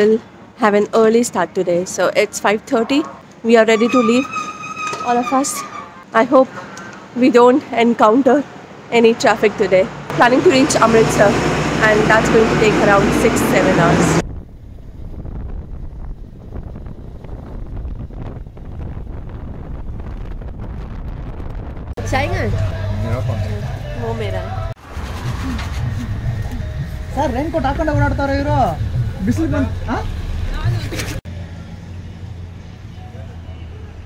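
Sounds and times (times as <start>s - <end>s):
person talking: 7.2s - 14.2s
wind buffeting microphone: 10.3s - 31.2s.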